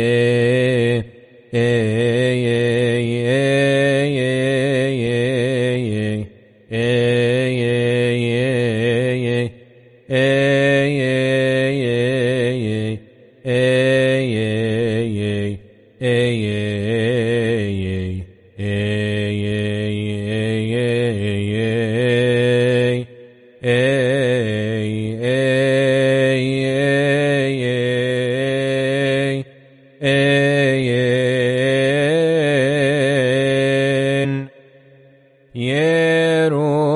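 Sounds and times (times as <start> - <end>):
man chanting solo: 0.0 - 34.5, 35.6 - 36.9
breaths: 9.6 - 10.1, 23.1 - 23.6, 29.5 - 30.0, 34.5 - 35.6.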